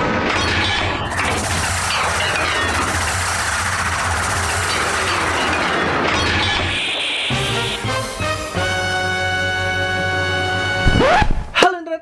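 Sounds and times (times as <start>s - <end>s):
soundtrack music: 7.3s - 11.6s.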